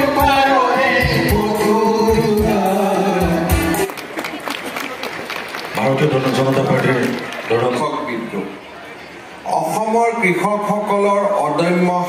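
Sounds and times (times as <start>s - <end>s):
group of voices singing: 0.0s - 3.9s.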